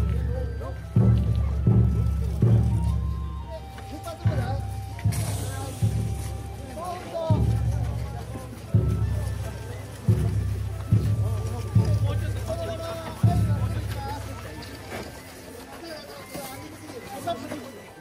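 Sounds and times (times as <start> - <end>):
voices calling out: 0.0 - 18.0.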